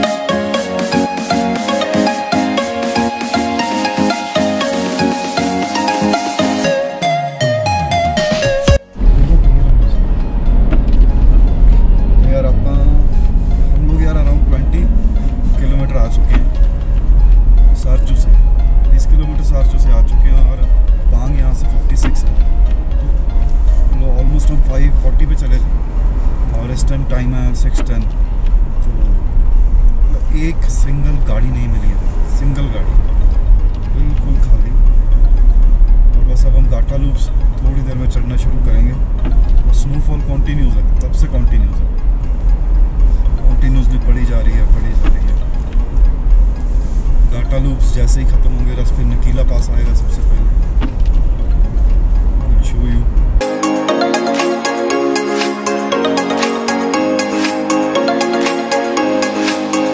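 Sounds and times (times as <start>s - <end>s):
music: 0.0s - 26.9s, 29.3s - 59.9s
car engine and tyres rumbling: 8.2s - 53.5s.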